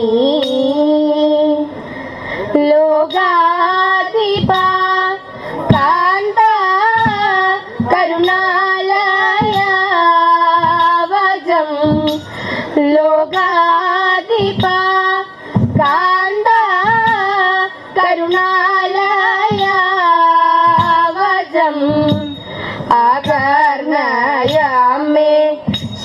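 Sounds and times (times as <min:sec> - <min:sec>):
girls singing: 0:00.0 - 0:01.8, 0:02.6 - 0:25.8
sharp beats: 0:03.0 - 0:26.0.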